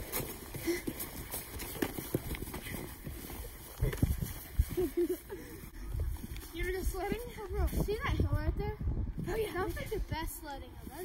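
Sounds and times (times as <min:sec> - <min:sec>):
footsteps crunching through snow: 0:00.0 - 0:05.1.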